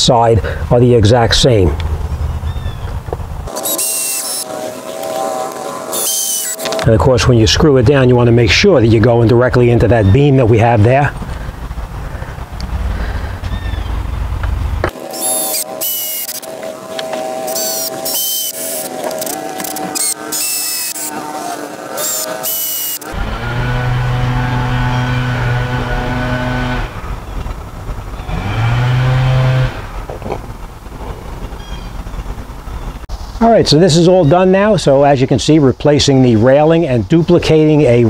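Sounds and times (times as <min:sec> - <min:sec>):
cordless drill driving screws: 0:03.5 - 0:06.9, 0:14.9 - 0:26.9
sharp clicks and rattles: 0:10.9 - 0:24.1.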